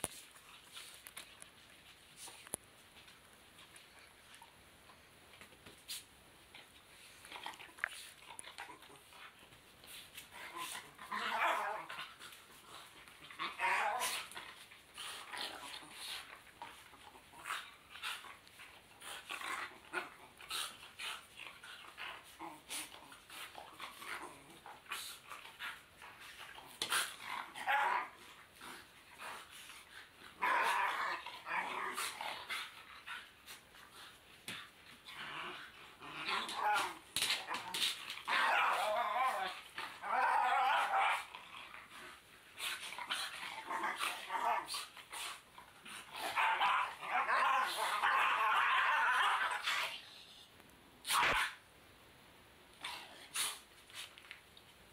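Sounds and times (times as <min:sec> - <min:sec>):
dogs growling and barking: 0:10.2 - 0:50.2.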